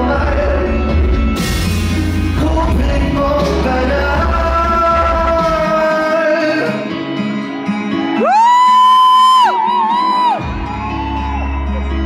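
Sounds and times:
live band music: 0.0 - 8.5
loud high whoop: 8.0 - 12.0.

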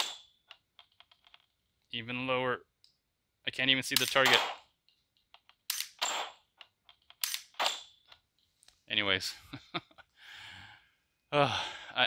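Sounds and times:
small handling clicks: 3.9 - 8.8.

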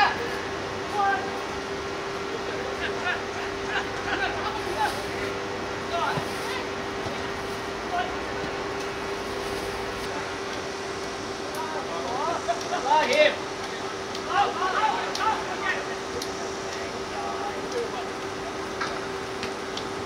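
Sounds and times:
steady hum: 0.0 - 20.0
distant shouts and calls: 11.6 - 18.4.

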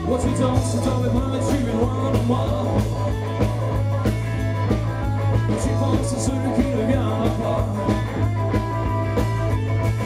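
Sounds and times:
rock band playing: 0.0 - 10.0.

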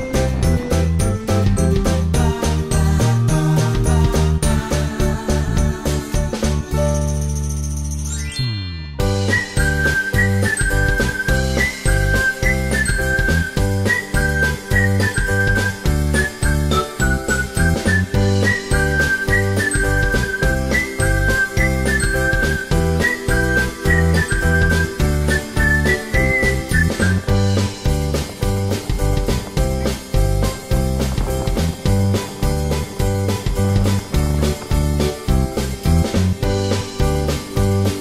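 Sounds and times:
upbeat music with high melody: 0.0 - 38.0
falling sweep: 8.4 - 37.5.

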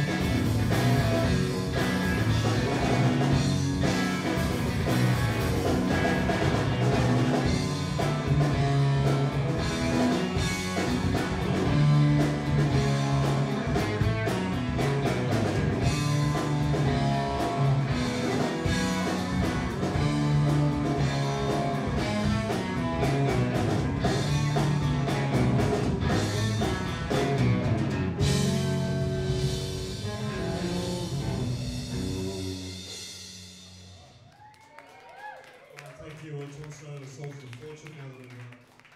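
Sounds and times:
electric guitars: 0.0 - 34.0
electric bass line: 0.0 - 34.2
drum kit: 0.0 - 34.4.

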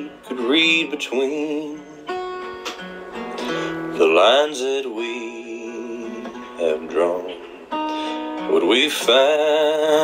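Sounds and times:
person singing: 0.0 - 2.2, 3.4 - 10.0
acoustic guitar strumming: 0.0 - 10.0.

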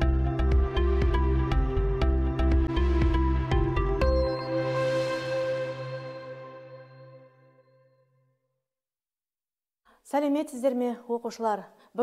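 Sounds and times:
electronic jingle music: 0.0 - 7.9.

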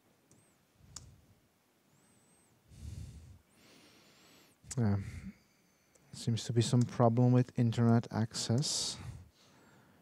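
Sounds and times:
man breathing out heavily: 2.7 - 5.3.

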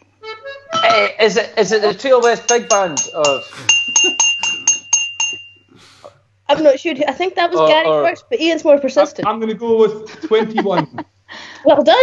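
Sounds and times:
small bell ringing rapidly: 1.9 - 5.7.

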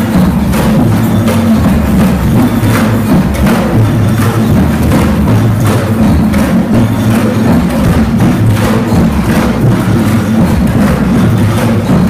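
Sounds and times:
deep drum beats: 0.0 - 12.0
sharp clicking percussion strokes: 0.0 - 12.0.

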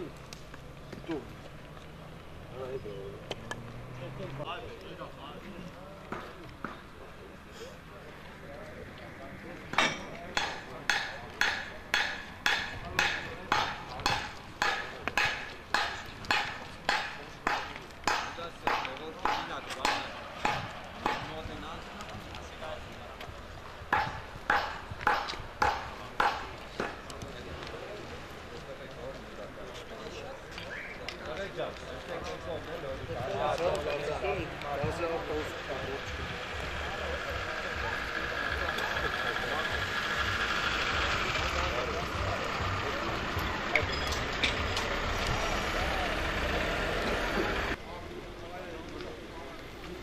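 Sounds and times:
footsteps on pavement: 0.0 - 40.3.

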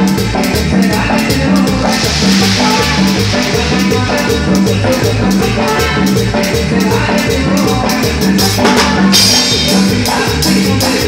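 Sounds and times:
live band playing latin dance music: 0.0 - 11.0
cymbal wash: 1.5 - 6.1.

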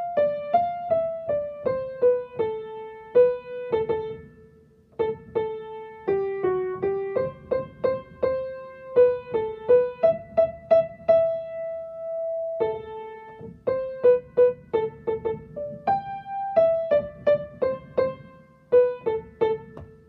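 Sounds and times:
piano single-note melody: 0.0 - 20.0.

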